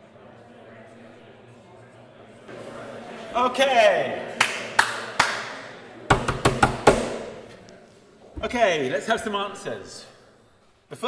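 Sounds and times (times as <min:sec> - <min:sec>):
sharp knocks: 0:06.1 - 0:07.5.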